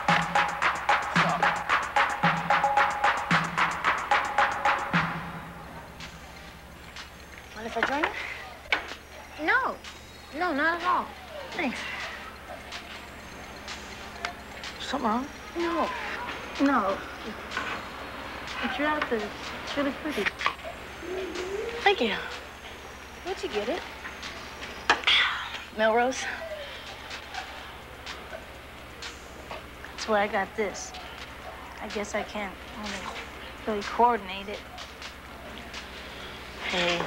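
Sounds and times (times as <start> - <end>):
steady low hum: 0.0 - 37.0
indistinct voices: 7.5 - 37.0.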